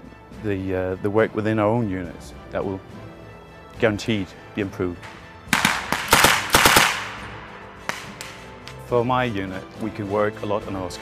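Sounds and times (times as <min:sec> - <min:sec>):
machine gun firing bursts: 0:05.5 - 0:07.3
single gunshot: 0:05.5 - 0:08.4.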